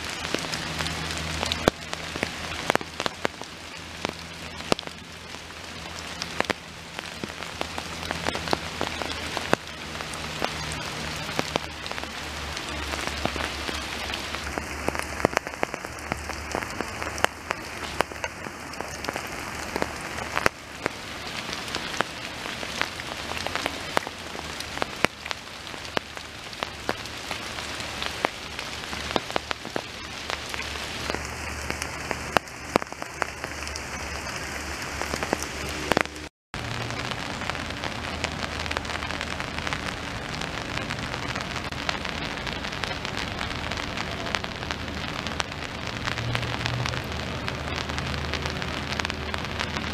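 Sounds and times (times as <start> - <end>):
rain hissing: 0.0 - 49.9
raindrops ticking: 0.0 - 49.9.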